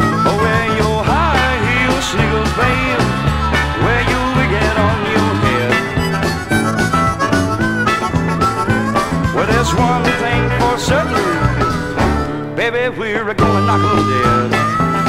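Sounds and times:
bass and rhythm section: 0.0 - 12.6
lead instrument sliding notes: 0.0 - 12.6.

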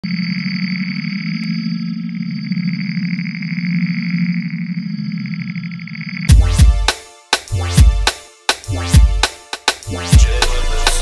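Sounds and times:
synthesizer drone: 0.0 - 11.0.

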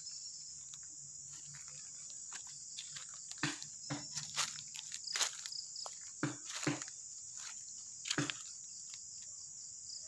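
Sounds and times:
insects chorus: 0.0 - 10.0
footsteps on dry leaves: 0.6 - 9.2.

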